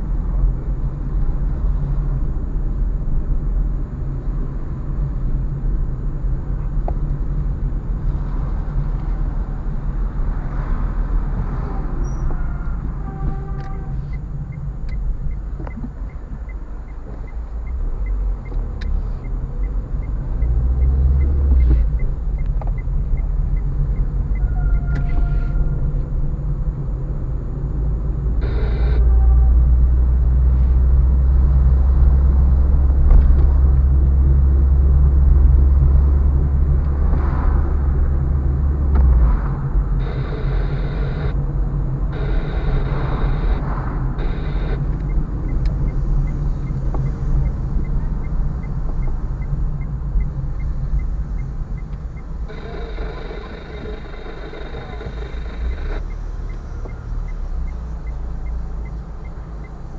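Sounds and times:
car engine and road noise: 0.0 - 59.9.

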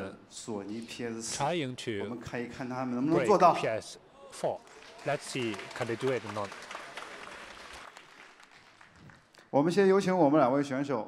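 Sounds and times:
faint audience applause: 4.5 - 9.5.

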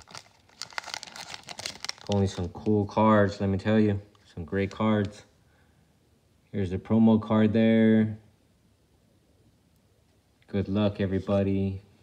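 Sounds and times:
foil wrapper crinkling: 0.0 - 3.0.

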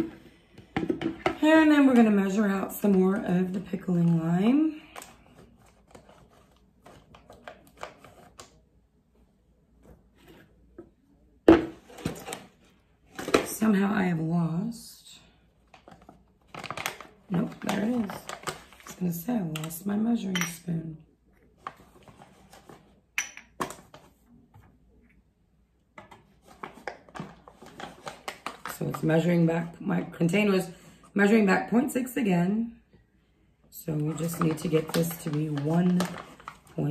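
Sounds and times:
woman speaking softly: 17.3 - 18.3, 18.9 - 21.2, 33.7 - 36.9
containers and spoon clinking: 23.2 - 23.8.

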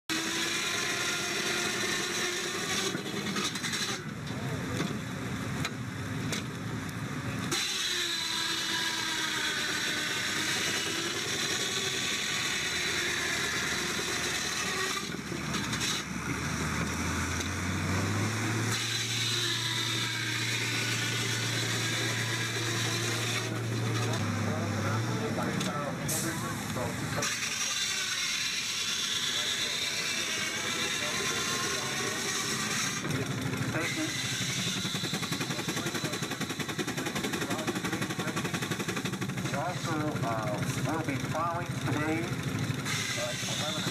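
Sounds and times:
wood-sawing machine whining: 0.0 - 5.0, 7.2 - 43.9.

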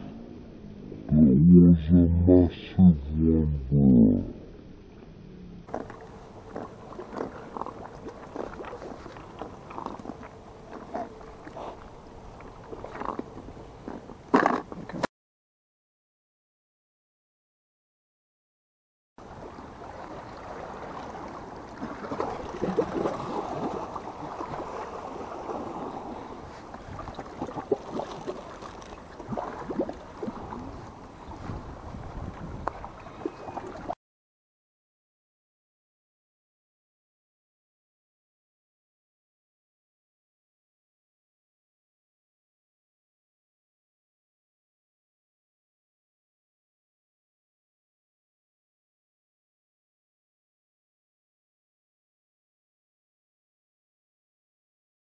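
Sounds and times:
low rush of water: 19.2 - 34.0
small waves lapping on rocks: 19.2 - 34.0
wind on microphone: 30.2 - 33.5.

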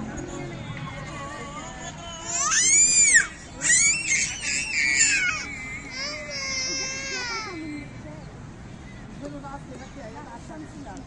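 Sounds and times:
young child crying: 2.2 - 7.6.

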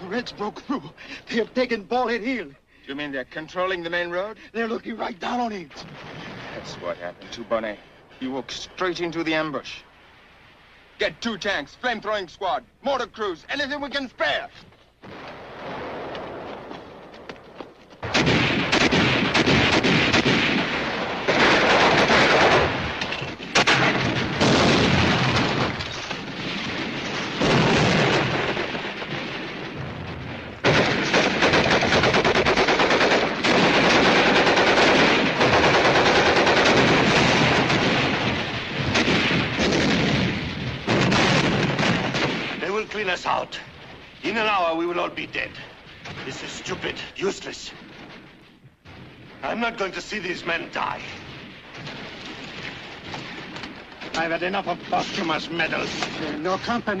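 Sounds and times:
machine-gun and rifle fire: 18.0 - 42.8
heavy explosion blasts: 18.0 - 44.0.

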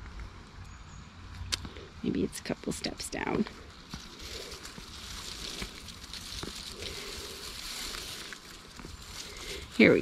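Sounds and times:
footsteps in undergrowth: 3.3 - 10.0
faint crunches: 3.4 - 10.0.

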